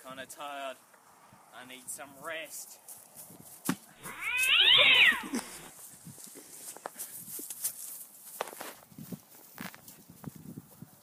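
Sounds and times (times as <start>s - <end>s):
cat yowling: 4.0s - 5.7s.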